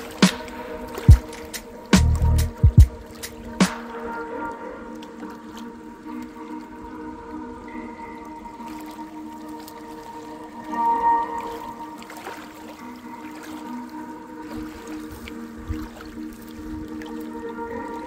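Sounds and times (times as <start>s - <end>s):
lake waves lapping on rocks: 0.0s - 7.5s, 8.1s - 18.0s
calm music of long held notes: 0.0s - 18.0s.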